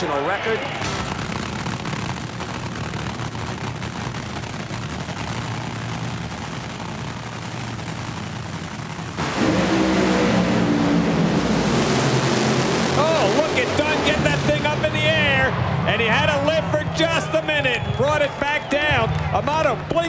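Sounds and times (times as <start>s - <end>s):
dragster engines: 0.0s - 20.0s
dragsters launching at full throttle: 0.0s - 20.0s.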